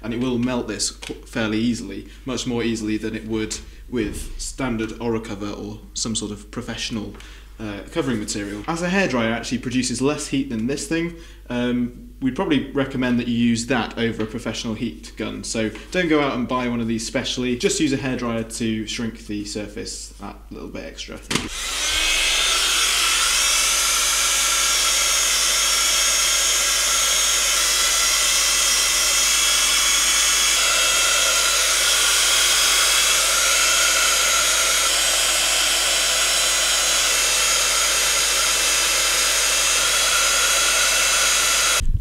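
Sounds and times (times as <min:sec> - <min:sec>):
heat gun fan whine: 0:21.3 - 0:41.8.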